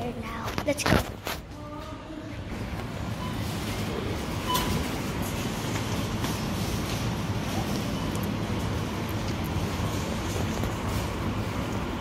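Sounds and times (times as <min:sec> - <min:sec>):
supermarket background rumble: 0:00.0 - 0:12.0.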